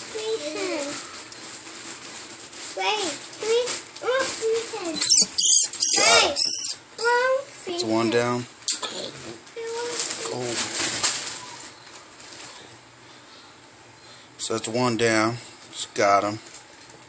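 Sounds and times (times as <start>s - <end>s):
high-pitched squealing cries: 5.0s - 6.8s.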